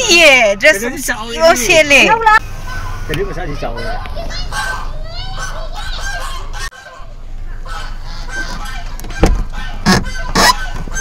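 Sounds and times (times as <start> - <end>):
bird calls: 2.5 - 11.0.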